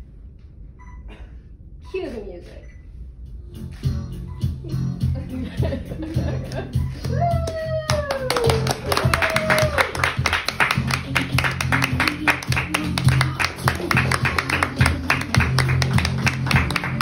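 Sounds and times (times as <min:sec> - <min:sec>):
people laughing: 0:05.2 - 0:07.3
people clapping and applauding: 0:06.4 - 0:17.0
music with low bass line: 0:08.7 - 0:17.0.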